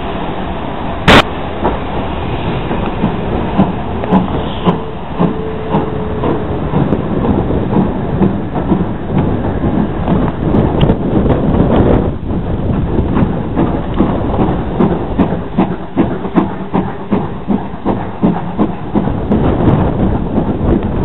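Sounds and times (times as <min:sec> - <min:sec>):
train running noise: 0:00.0 - 0:21.0
sharp crack: 0:01.0 - 0:01.3
wheels clicking over rail joints: 0:01.0 - 0:21.0.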